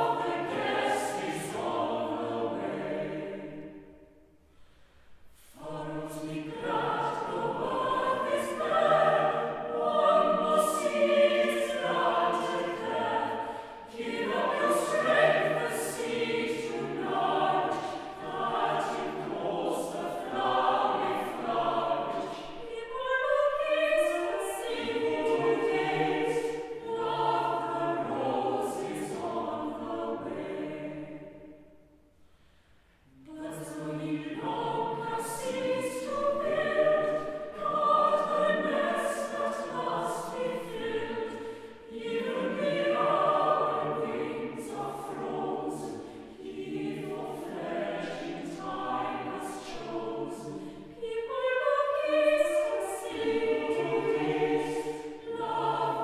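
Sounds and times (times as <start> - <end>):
mixed choir singing: 0.0 - 4.4, 5.3 - 32.1, 33.0 - 56.0.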